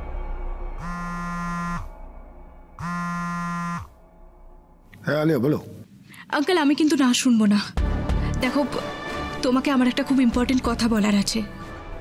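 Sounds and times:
phone ringing tone: 2.8s - 3.9s.

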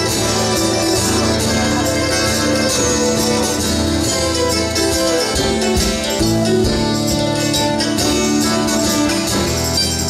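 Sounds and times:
hand percussion: 0.0s - 10.0s
mandolin: 0.0s - 10.0s
strummed acoustic guitar: 0.0s - 10.0s.

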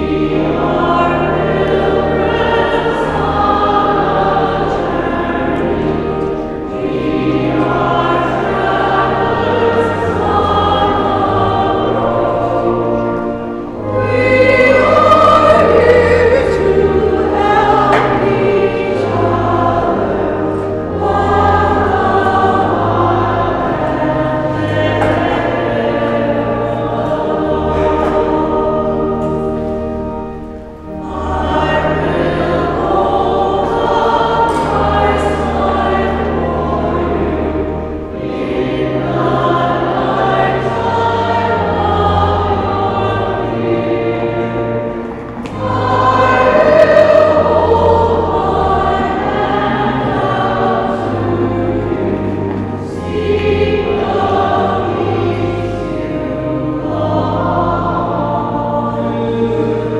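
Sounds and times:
choir singing a hymn: 0.0s - 59.9s
sustained low accompaniment: 0.0s - 59.9s.

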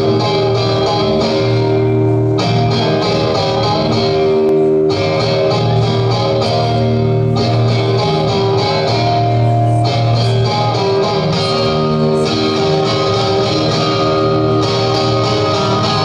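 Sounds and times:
electric guitar strummed chords: 0.0s - 16.0s.

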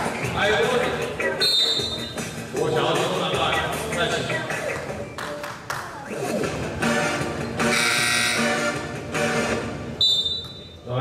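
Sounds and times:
referee's whistle blast: 1.4s - 2.1s, 7.7s - 8.5s, 10.0s - 10.8s.

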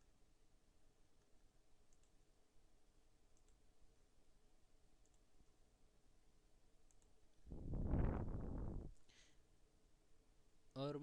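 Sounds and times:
faint computer mouse clicks: 1.9s - 2.2s, 3.3s - 3.6s, 5.0s - 5.3s, 6.8s - 7.2s.

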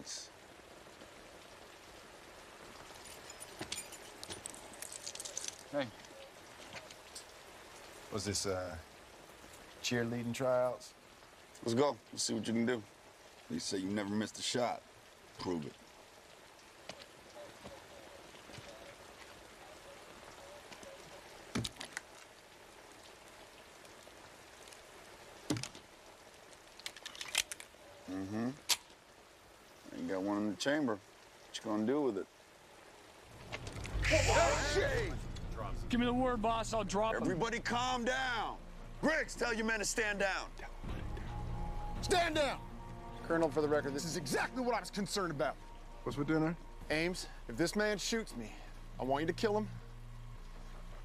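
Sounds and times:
steady rain: 0.0s - 51.0s
small metallic clicks and rattles: 26.8s - 27.7s.

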